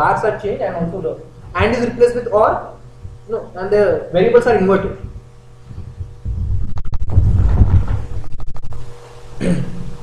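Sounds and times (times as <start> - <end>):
low rubbing and scraping flutter: 5.6 - 8.9.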